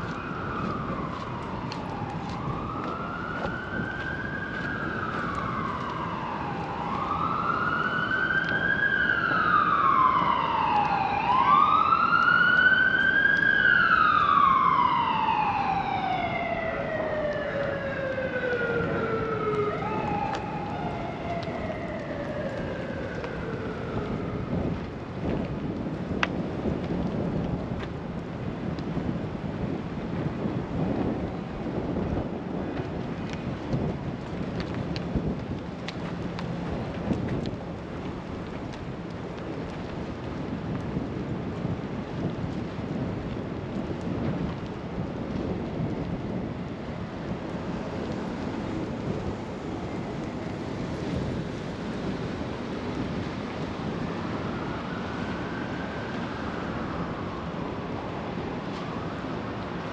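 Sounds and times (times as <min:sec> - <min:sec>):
emergency siren wailing: 0:00.0 - 0:59.9.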